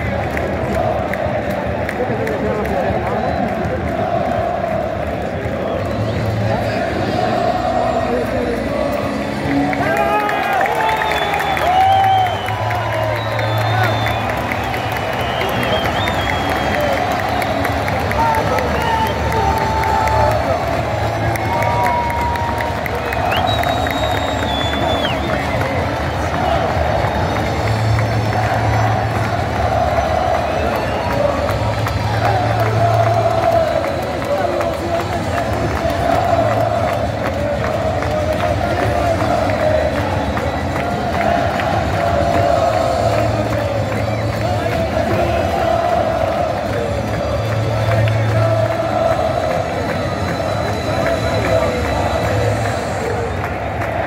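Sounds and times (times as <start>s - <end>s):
stadium crowd singing a chant: 0.0s - 54.0s.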